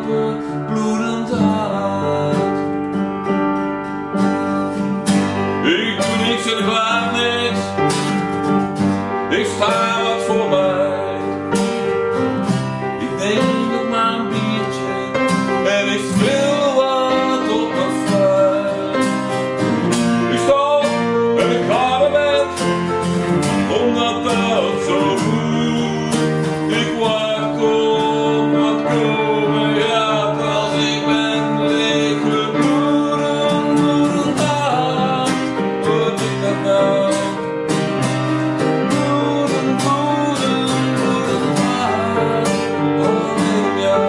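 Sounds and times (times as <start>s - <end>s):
man singing: 0.0s - 3.0s, 5.3s - 8.4s, 9.0s - 44.0s
keyboard: 0.0s - 44.0s
strummed acoustic guitar: 0.0s - 44.0s.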